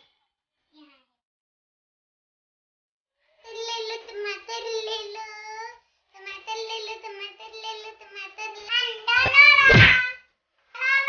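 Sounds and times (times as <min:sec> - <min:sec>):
child singing: 0:03.5 - 0:10.2, 0:10.8 - 0:11.0
thump: 0:09.2 - 0:10.1.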